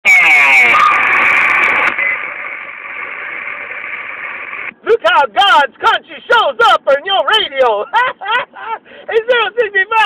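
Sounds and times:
distorted radio noise warbling tone: 0.0 - 4.8
radio static hiss: 0.1 - 4.8.

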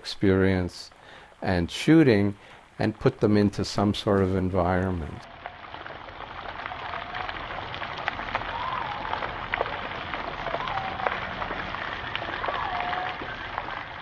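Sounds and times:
steady hiss: 0.0 - 7.3.

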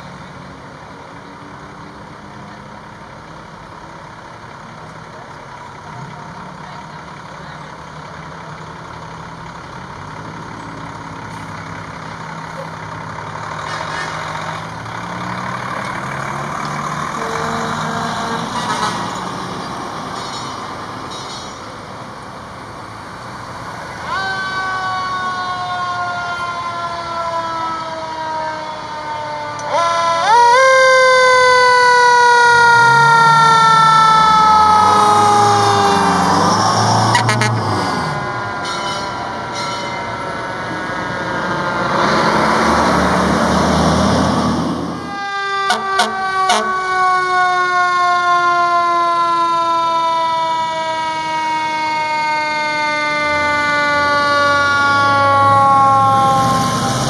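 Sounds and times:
truck engine revving: 0.0 - 47.9, 49.2 - 57.0
fire truck engines rumbling: 0.0 - 57.0
fire truck siren: 0.0 - 57.0.

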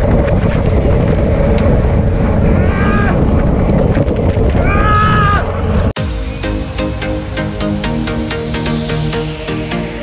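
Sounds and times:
wind buffeting microphone: 0.0 - 6.0.

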